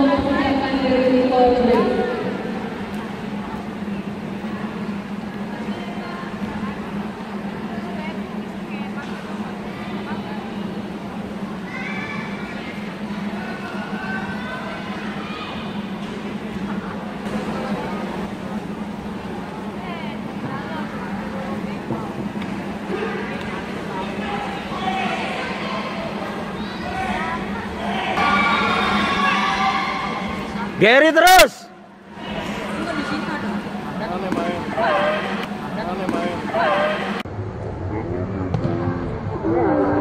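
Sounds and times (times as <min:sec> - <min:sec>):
steady low hum: 0:00.0 - 0:31.0
crowd chatter in a hall: 0:00.0 - 0:40.0.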